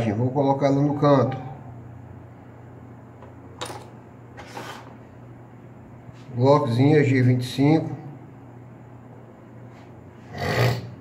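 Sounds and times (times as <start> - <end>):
steady low hum: 0.0 - 11.0
short scraping rustles: 4.4 - 5.0.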